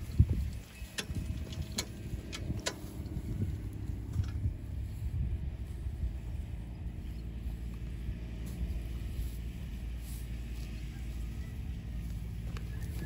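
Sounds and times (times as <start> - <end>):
cart rattling over grass: 0.0 - 13.0
low rumble: 0.0 - 13.0.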